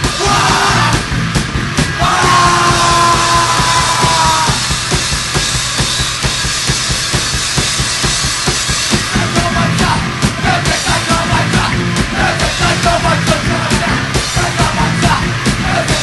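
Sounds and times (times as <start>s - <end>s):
heavy metal music: 0.0s - 16.0s
loud guitars: 0.0s - 16.0s
rapid dense drumming: 0.0s - 16.0s.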